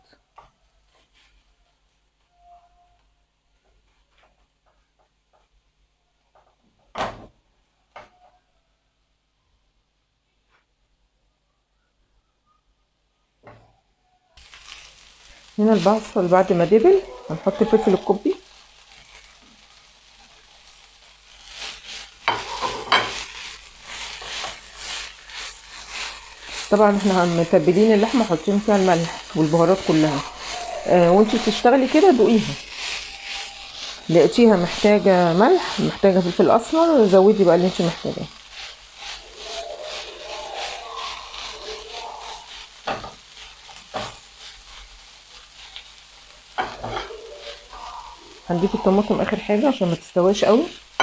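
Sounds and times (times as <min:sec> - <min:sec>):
food sizzling in a frying pan: 0:14.4 - 0:51.0
spatula scraping a pan: 0:14.4 - 0:51.0.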